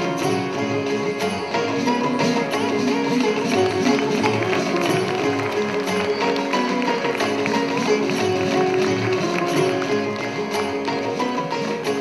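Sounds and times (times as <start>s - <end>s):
percussion strokes: 0.0s - 12.0s
plucked and bowed strings: 0.0s - 12.0s.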